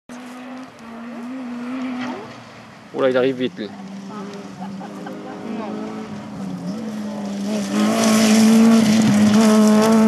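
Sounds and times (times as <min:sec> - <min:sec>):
rally car engine at high revs: 0:00.1 - 0:10.0.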